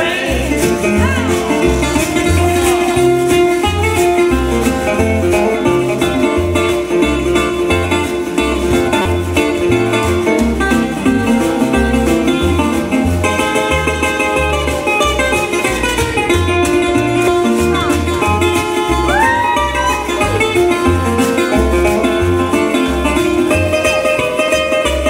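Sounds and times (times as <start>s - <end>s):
guitar lead line: 0.0s - 25.0s
plucked double bass: 0.0s - 25.0s
washboard scratchy rhythm: 0.0s - 25.0s.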